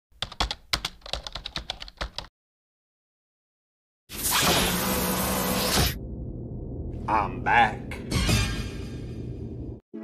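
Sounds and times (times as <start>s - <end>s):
computer keyboard typing: 0.2s - 2.3s.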